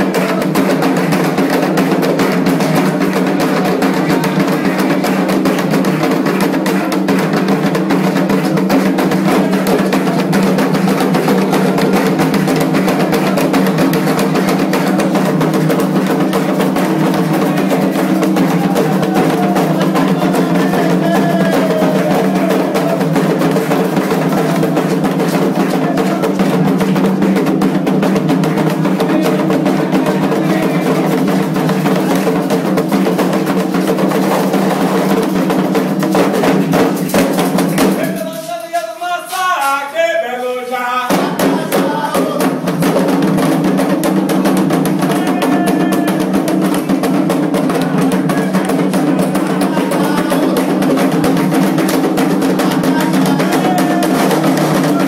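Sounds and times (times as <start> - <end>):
fast hand drums: 0.0 - 40.2, 41.0 - 55.0.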